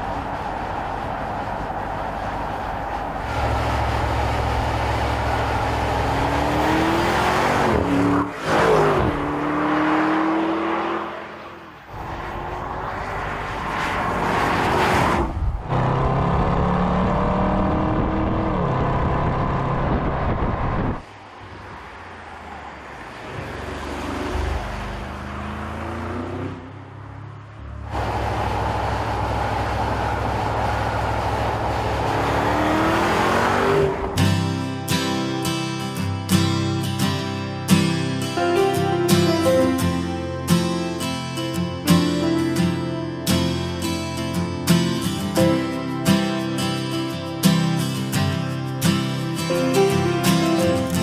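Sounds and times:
tyre and road noise: 0:00.0 - 0:51.0
car engine accelerating past: 0:00.1 - 0:21.0, 0:27.8 - 0:34.2.

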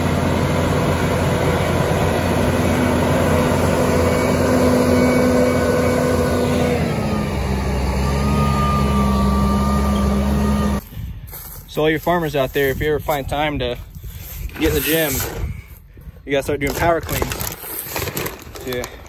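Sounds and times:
tractor diesel engine running: 0:00.0 - 0:12.8
thin higher whine: 0:02.8 - 0:10.8.

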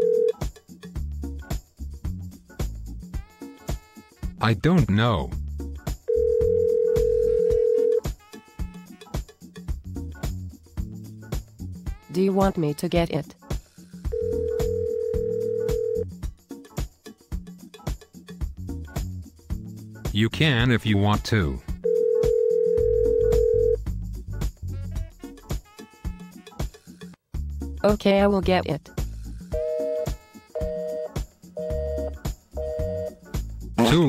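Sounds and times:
electronic telephone ring tone: 0:00.0 - 0:00.4, 0:06.1 - 0:08.0, 0:14.1 - 0:16.0, 0:21.8 - 0:23.8, 0:29.5 - 0:33.2
background music with light beat: 0:00.0 - 0:34.0.

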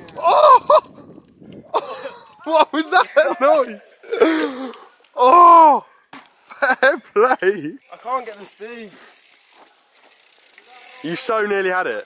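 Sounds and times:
bike freehub ticking: 0:03.4 - 0:05.2, 0:07.8 - 0:12.0.

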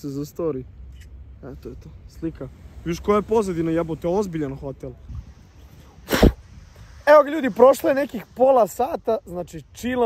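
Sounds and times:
faint background hiss: 0:00.0 - 0:10.0
short sharp noise burst: 0:05.3 - 0:07.1.

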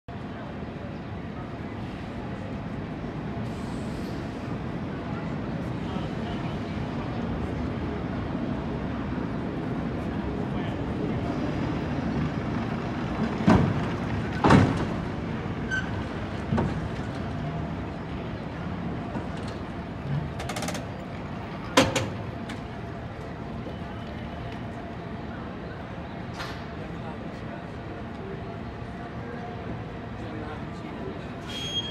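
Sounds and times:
cable car rumbling on rails: 0:00.4 - 0:30.3.

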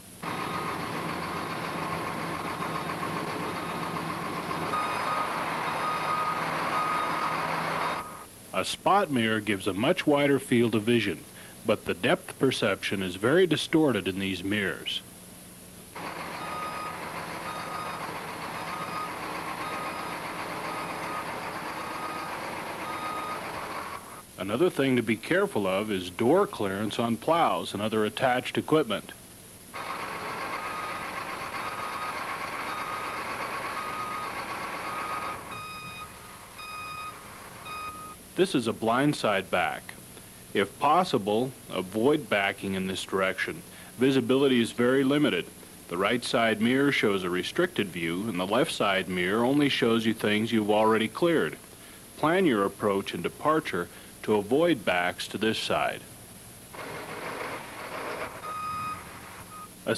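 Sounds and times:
vehicle running noise: 0:00.0 - 0:08.3, 0:16.0 - 0:24.2, 0:29.8 - 0:38.2, 0:56.8 - 0:59.7
truck reversing alarm beeping: 0:00.2 - 0:08.3, 0:16.0 - 0:24.2, 0:29.8 - 0:38.2, 0:56.8 - 0:59.8.

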